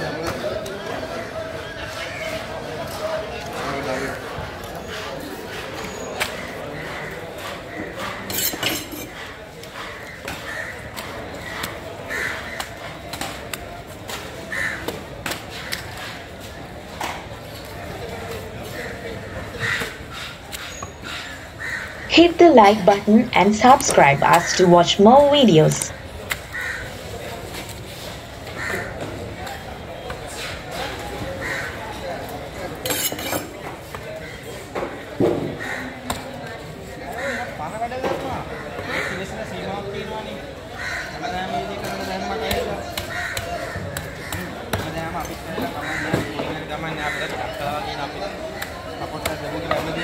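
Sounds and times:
open market background noise: 0:00.0 - 0:50.0
knife clinking and scraping: 0:08.3 - 0:09.2, 0:32.8 - 0:33.5
crows cawing: 0:14.5 - 0:14.9, 0:21.5 - 0:22.1, 0:31.4 - 0:31.8, 0:40.7 - 0:41.4, 0:43.0 - 0:44.6, 0:45.7 - 0:46.3
background voices: 0:22.1 - 0:25.9.

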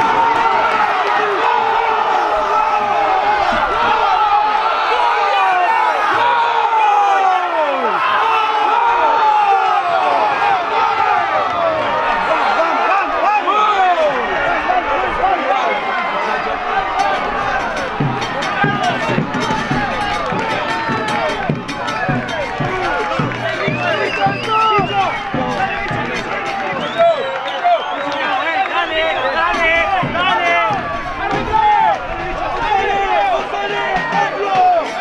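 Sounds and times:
crowd cheering and shouting: 0:00.0 - 0:35.0
sharp rhythmic beats: 0:16.6 - 0:35.0.

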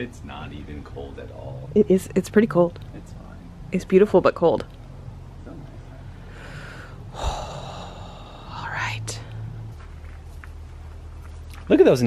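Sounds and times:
steady low hum: 0:00.0 - 0:12.0
person gasping: 0:06.3 - 0:08.5.

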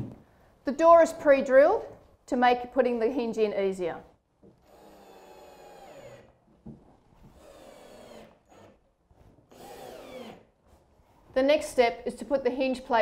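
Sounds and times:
cordless drill motor whine: 0:09.5 - 0:10.4.

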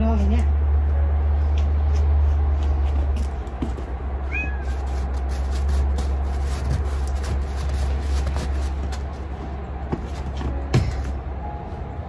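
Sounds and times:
steady low rumble: 0:00.0 - 0:12.0
cat meowing: 0:04.3 - 0:04.9.

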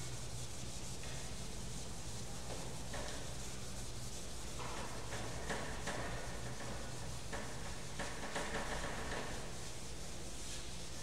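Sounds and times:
duster wiping chalkboard: 0:10.4 - 0:11.0.

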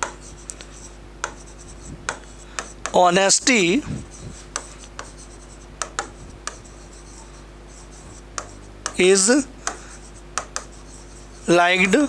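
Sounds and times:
pen scraping on glass board: 0:00.0 - 0:03.0, 0:04.1 - 0:09.0, 0:09.7 - 0:11.5
low steady hum: 0:00.0 - 0:12.0
pen tapping on glass: 0:01.2 - 0:01.4, 0:05.8 - 0:06.6, 0:08.4 - 0:09.0, 0:10.4 - 0:10.8.

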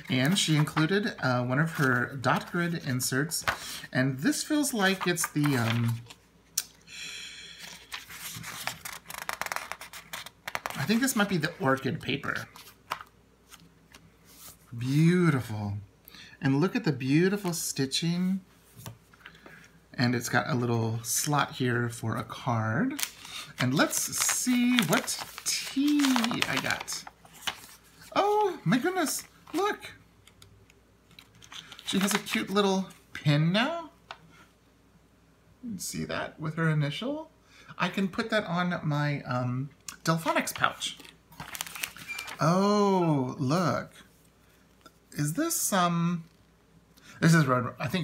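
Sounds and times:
paper pages rustling: 0:00.0 - 0:03.8, 0:04.4 - 0:06.3, 0:07.6 - 0:14.7, 0:22.9 - 0:29.8, 0:31.1 - 0:33.0, 0:40.4 - 0:42.4
man speaking: 0:00.0 - 0:06.0, 0:10.7 - 0:12.6, 0:14.7 - 0:18.5, 0:23.6 - 0:27.1, 0:28.1 - 0:30.0, 0:31.9 - 0:34.0, 0:35.6 - 0:41.0, 0:42.4 - 0:44.1, 0:45.1 - 0:46.3, 0:47.2 - 0:48.0.

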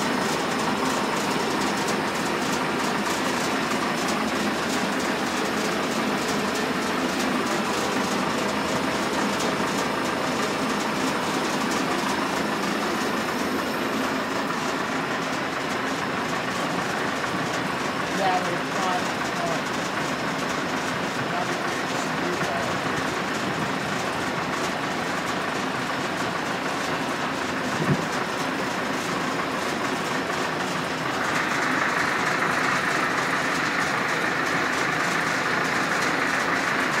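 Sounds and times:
machine running: 0:00.0 - 0:37.0.

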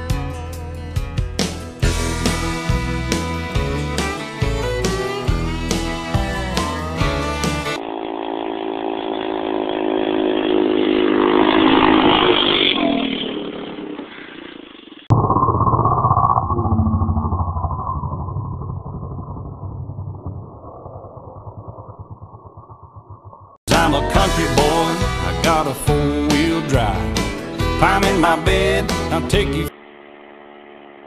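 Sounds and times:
music: 0:00.0 - 0:07.8, 0:23.7 - 0:29.7
atv engine passing: 0:05.8 - 0:14.7, 0:23.7 - 0:31.0.

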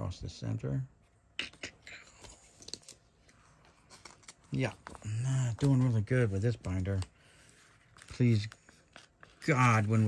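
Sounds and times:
plastic pages crinkling: 0:02.0 - 0:10.0.

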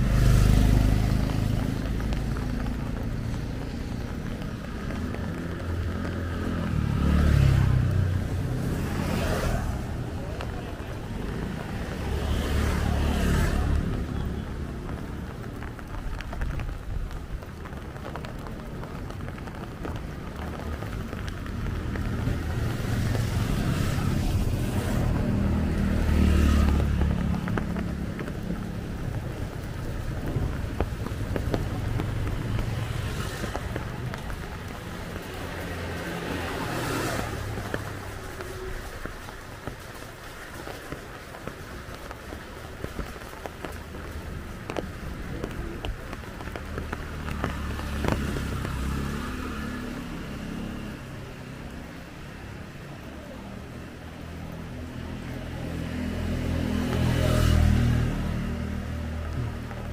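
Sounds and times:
low traffic rumble: 0:00.0 - 0:59.9
motorcycles passing on wet road: 0:00.0 - 0:59.9.

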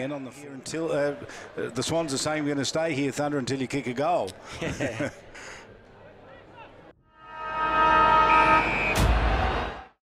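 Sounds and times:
horn-like chord: 0:07.0 - 0:09.0.

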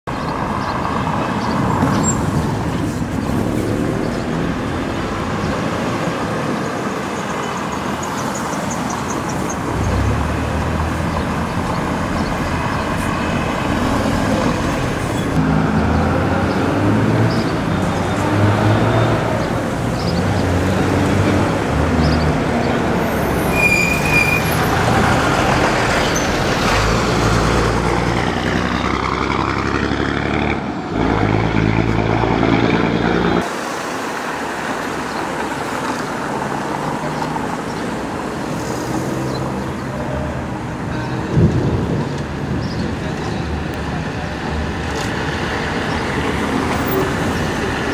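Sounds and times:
car and bus engines passing: 0:00.1 - 0:47.9
high squeal: 0:23.0 - 0:24.8.

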